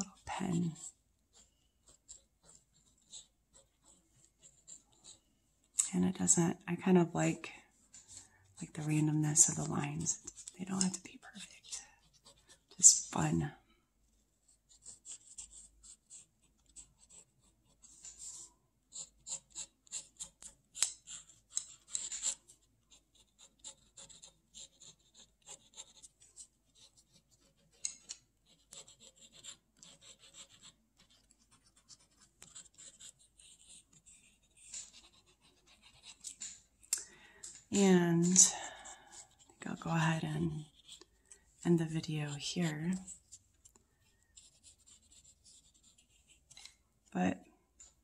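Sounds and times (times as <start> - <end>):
pen scratching on paper: 0.0 - 5.8, 8.0 - 13.5, 14.5 - 36.6, 38.1 - 46.8.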